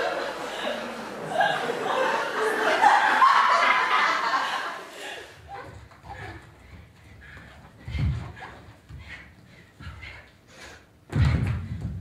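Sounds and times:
audience laughing: 0:00.0 - 0:05.4.

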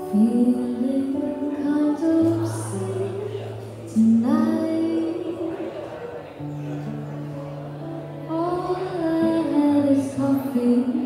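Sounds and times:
woman singing: 0:00.0 - 0:03.2, 0:03.9 - 0:05.7, 0:08.3 - 0:11.0
acoustic guitar: 0:00.0 - 0:11.0.

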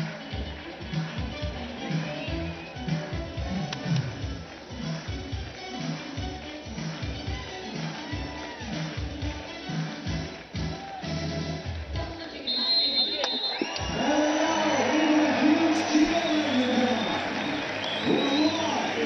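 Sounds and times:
crowd noise: 0:00.0 - 0:19.0
music over stadium loudspeakers: 0:00.0 - 0:19.0
whistle blast: 0:12.4 - 0:19.0
voice over loudspeakers: 0:14.0 - 0:19.0.

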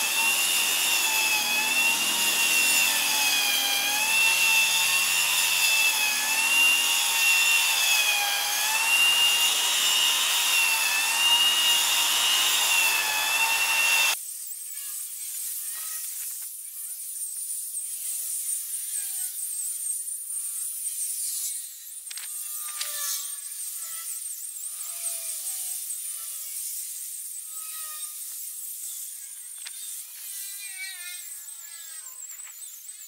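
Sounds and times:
grass trimmer motor whine: 0:00.0 - 0:14.2.

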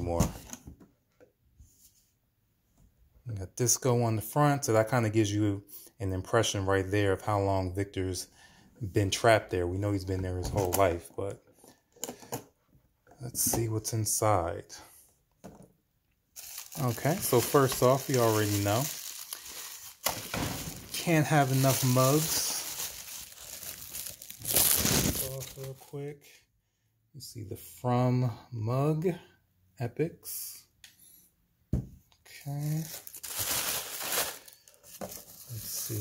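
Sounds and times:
bubble wrap crinkling: 0:16.4 - 0:25.9, 0:32.5 - 0:36.0.

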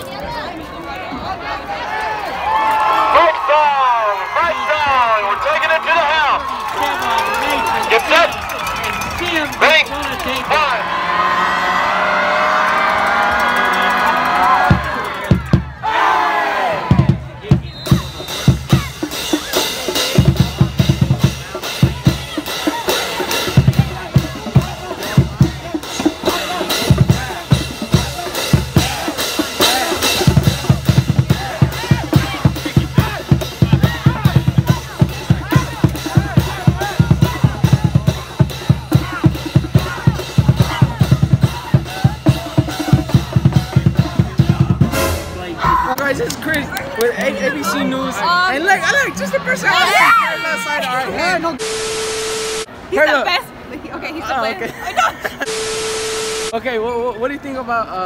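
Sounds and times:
brass instruments: 0:02.5 - 0:46.0, 0:49.1 - 0:52.7, 0:55.4 - 0:56.6
marching band playing: 0:02.9 - 0:53.3, 0:55.4 - 0:56.6
group of voices shouting: 0:10.4 - 0:17.1, 0:25.7 - 0:37.9, 0:48.1 - 0:51.1
bass drums and snares beat: 0:16.9 - 0:45.6.

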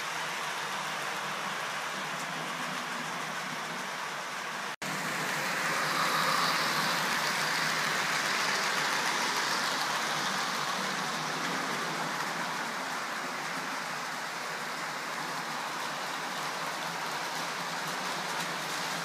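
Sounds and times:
model train wheels rolling on rails: 0:00.0 - 0:19.0.

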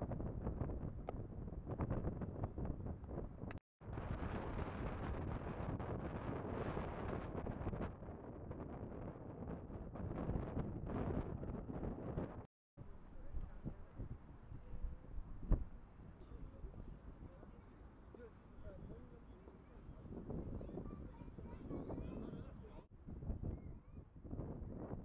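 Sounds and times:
wind buffeting microphone: 0:00.0 - 0:17.6, 0:18.2 - 0:25.0.

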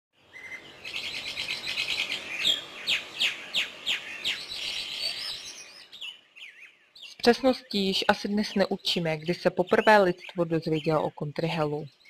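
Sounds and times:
songbird singing: 0:00.2 - 0:12.0.

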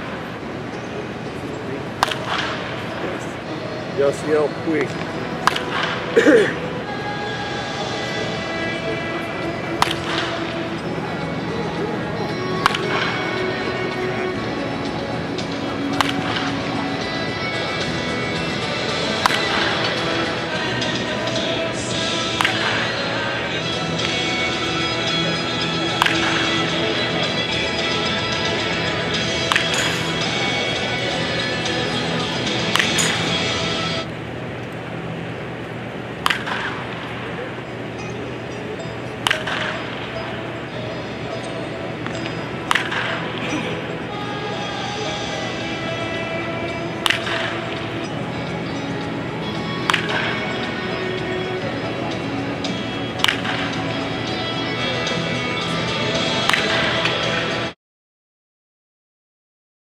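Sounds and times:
background music: 0:00.0 - 0:57.8
bat striking baseballs: 0:01.9 - 0:03.0, 0:04.8 - 0:06.4, 0:08.5 - 0:33.9, 0:35.6 - 0:44.2, 0:45.9 - 0:51.9, 0:52.6 - 0:55.1, 0:56.2 - 0:57.6
bat cracking against ball: 0:02.0 - 0:02.8, 0:04.9 - 0:06.2, 0:09.7 - 0:10.5, 0:12.6 - 0:13.2, 0:15.9 - 0:16.7, 0:19.1 - 0:20.1, 0:22.4 - 0:22.9, 0:25.9 - 0:26.7, 0:29.3 - 0:30.4, 0:32.6 - 0:33.4, 0:36.2 - 0:37.2, 0:39.2 - 0:40.4, 0:42.0 - 0:43.5, 0:47.0 - 0:48.0, 0:49.8 - 0:50.7, 0:53.2 - 0:53.8, 0:56.4 - 0:57.4.

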